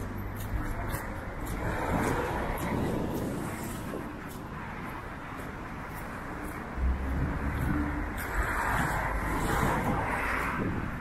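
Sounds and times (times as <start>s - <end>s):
footsteps on wet cobblestones: 0.0s - 11.0s.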